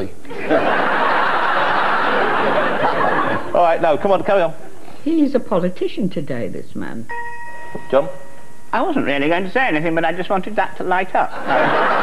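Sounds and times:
audience laughing: 0:00.3 - 0:04.8, 0:11.2 - 0:12.0.

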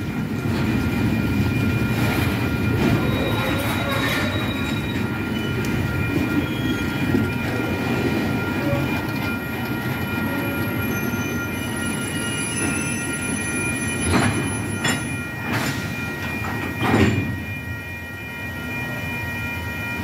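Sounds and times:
train wheels rumbling on rails: 0:00.0 - 0:19.1
wheel squeal: 0:02.8 - 0:05.7.

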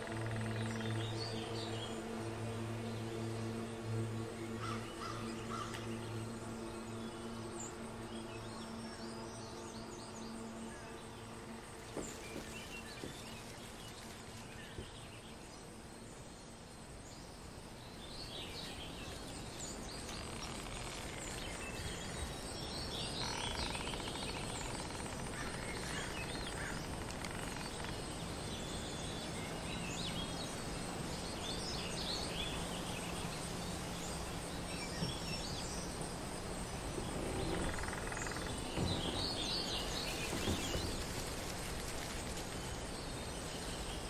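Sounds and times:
steady background noise: 0:00.0 - 0:44.0.

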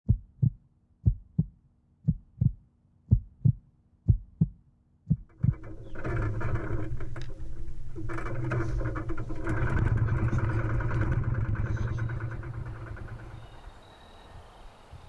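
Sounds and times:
heartbeat thumps: 0:00.0 - 0:05.4.

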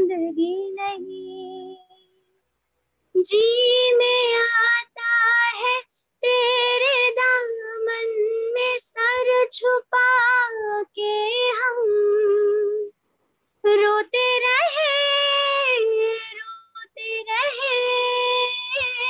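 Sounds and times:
woman singing unaccompanied: 0:00.0 - 0:02.1, 0:03.2 - 0:12.9, 0:13.6 - 0:19.0.

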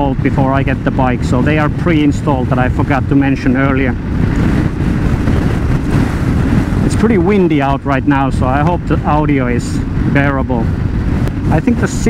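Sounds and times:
motorcycle engine: 0:00.0 - 0:07.0
wind buffeting microphone: 0:00.0 - 0:12.0.

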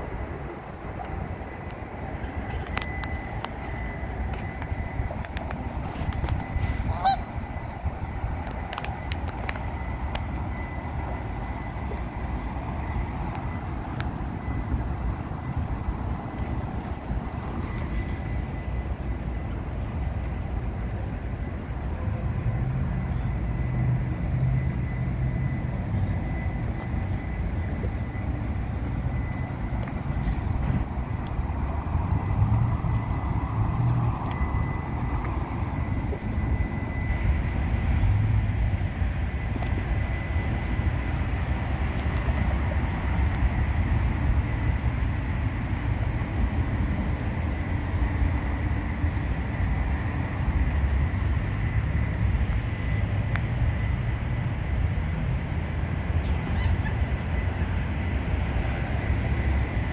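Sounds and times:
steady low rumble: 0:00.0 - 0:59.9
geese honking: 0:06.5 - 0:07.4.

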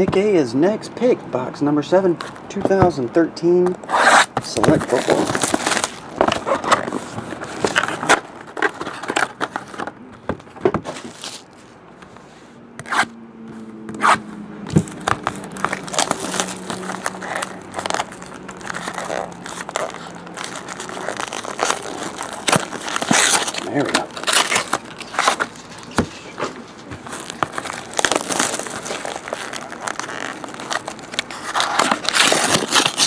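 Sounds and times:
shrink wrap tearing and crinkling: 0:03.9 - 0:09.8, 0:10.9 - 0:11.6, 0:14.7 - 0:33.0
cardboard box scraping and tapping: 0:13.9 - 0:29.3.

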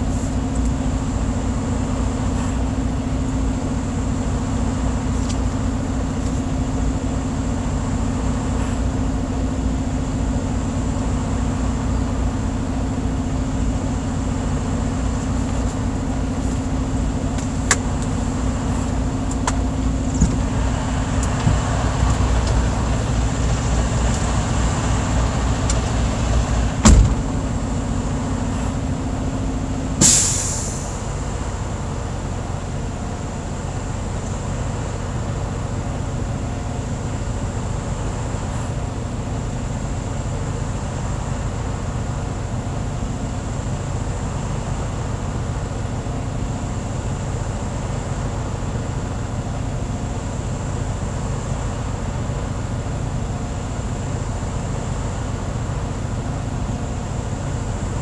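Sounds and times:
diesel truck engine idling: 0:00.0 - 0:58.0
compressed air hiss: 0:30.0 - 0:31.0.

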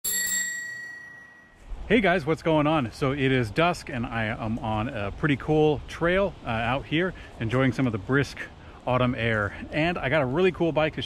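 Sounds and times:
bell-like ding: 0:00.0 - 0:01.7
man speaking: 0:01.9 - 0:11.0.

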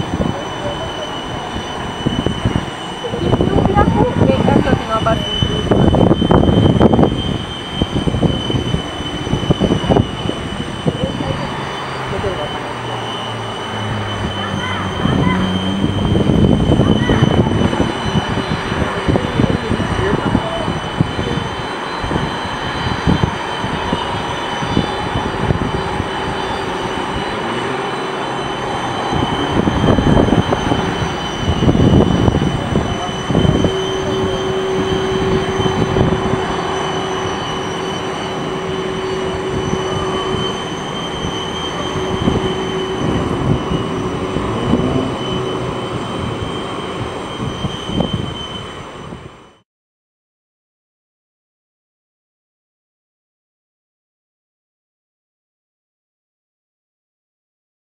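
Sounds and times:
jet engines whining and rumbling: 0:00.0 - 0:49.6.

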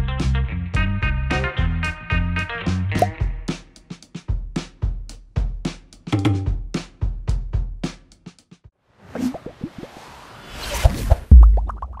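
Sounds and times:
rising whoosh: 0:09.1 - 0:12.0.

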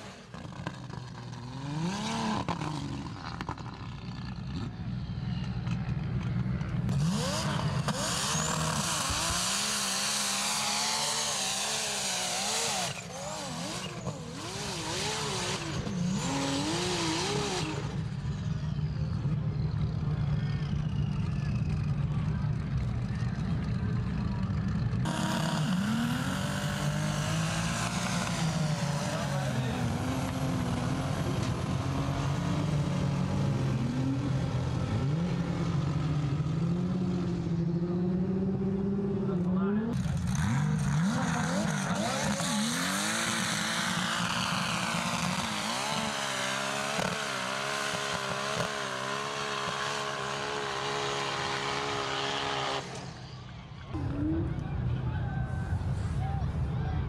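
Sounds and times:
suv engines revving hard: 0:00.0 - 0:04.8, 0:05.9 - 0:22.4, 0:24.0 - 0:53.3.

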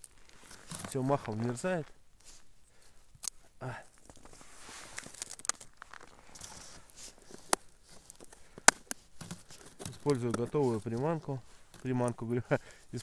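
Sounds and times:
fishing gear rustling: 0:00.0 - 0:13.0.

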